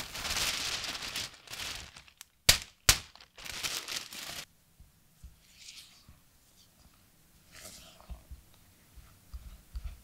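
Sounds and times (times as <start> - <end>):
paper crinkling: 0.0 - 4.5.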